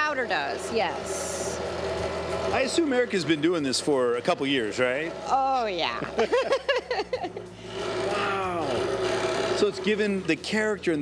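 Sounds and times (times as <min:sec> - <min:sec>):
wood shaper machine whine: 0:00.0 - 0:06.6, 0:07.2 - 0:11.0.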